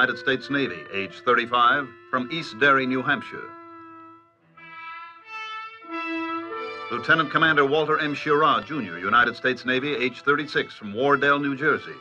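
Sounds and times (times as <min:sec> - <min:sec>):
brass instruments playing held notes: 0:00.0 - 0:12.0.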